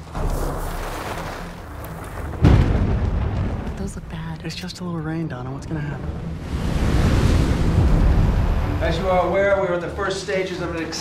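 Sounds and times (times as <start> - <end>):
rain and wind: 0.0 - 4.5, 5.8 - 9.6
thunderclap rumbling: 0.0 - 5.1
low music drone: 4.1 - 11.0.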